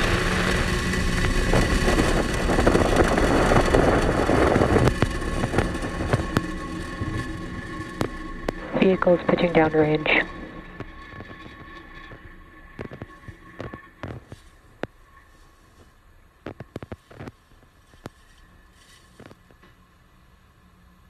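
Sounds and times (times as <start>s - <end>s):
rocket engines rumbling: 0.0s - 17.3s
sharp crackles and pops: 0.0s - 20.1s.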